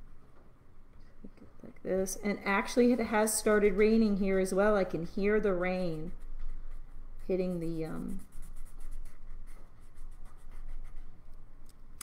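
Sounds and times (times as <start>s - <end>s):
marker rubbing on paper: 5.3s - 11.2s.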